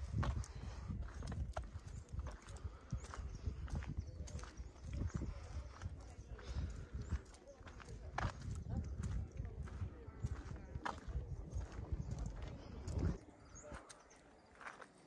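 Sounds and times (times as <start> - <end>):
wind rumble on microphone: 0.0 - 13.8
footsteps on earth path: 0.0 - 15.0.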